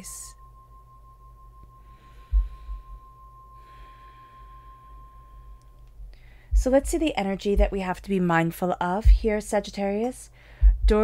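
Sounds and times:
singing bowl ringing: 0:00.0 - 0:06.6
low bump: 0:06.0 - 0:08.0.

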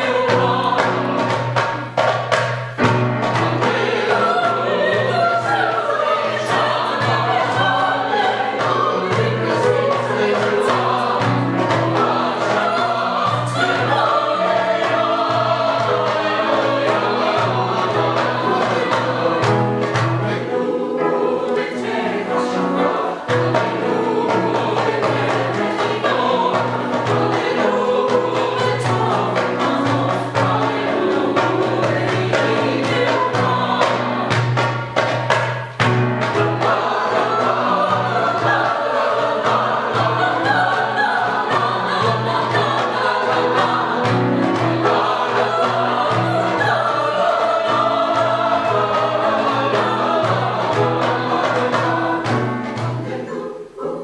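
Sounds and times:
grand piano accompaniment: 0:00.0 - 0:54.0
mixed choir singing: 0:00.0 - 0:54.0.

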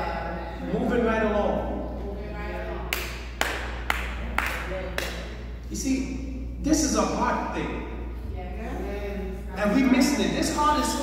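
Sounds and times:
slow handclaps: 0:02.9 - 0:05.4.

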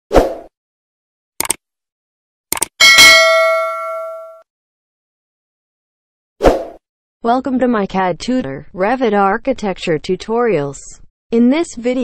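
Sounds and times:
quick clicks: 0:01.4 - 0:01.6, 0:02.5 - 0:02.7
notification bell ding: 0:02.8 - 0:04.4.

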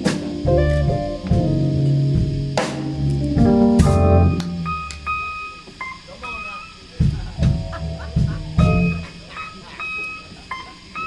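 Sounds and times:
blues band loud chord: 0:00.0 - 0:11.0
held electric guitar notes: 0:00.0 - 0:11.0.

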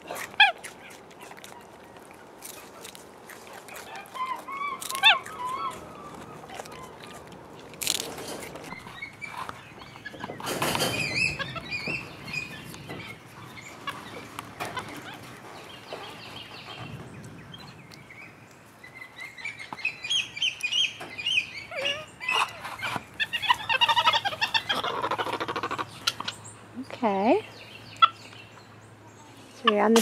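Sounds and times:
monkeys chirping: 0:00.0 - 0:18.1, 0:18.8 - 0:26.6, 0:27.5 - 0:30.0
knocks and rustles: 0:07.6 - 0:17.8.

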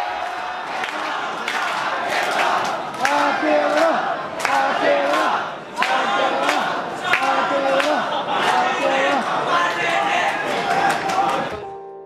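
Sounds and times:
crowd chanting in unison: 0:00.0 - 0:11.6.

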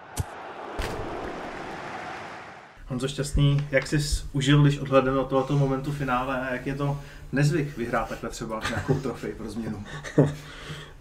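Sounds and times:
sharp hits: 0:00.0 - 0:02.4.

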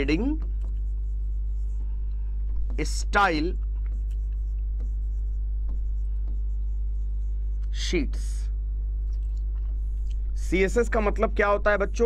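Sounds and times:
low electrical hum: 0:00.0 - 0:12.0
chalk scratching on chalkboard: 0:00.7 - 0:02.0, 0:02.6 - 0:07.8.

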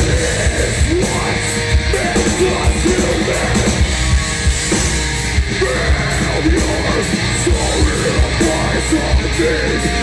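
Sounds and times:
distorted electric guitar: 0:00.0 - 0:10.0
heavy drums: 0:00.0 - 0:10.0.

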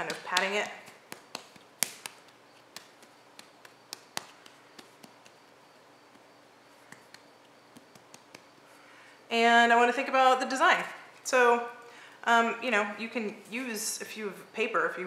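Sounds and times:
hands tapping clay rattle: 0:00.0 - 0:05.4, 0:06.9 - 0:08.6.

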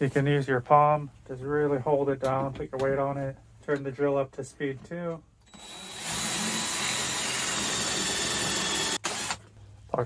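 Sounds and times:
cordless drill boring into wood: 0:05.5 - 0:09.5.

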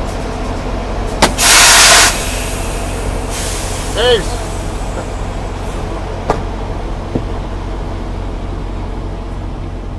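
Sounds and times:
diesel truck engine idling: 0:00.0 - 0:09.9.

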